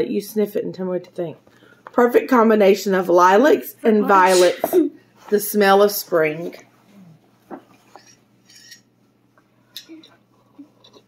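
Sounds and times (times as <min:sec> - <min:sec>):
person sniffing: 0:04.2 - 0:04.7.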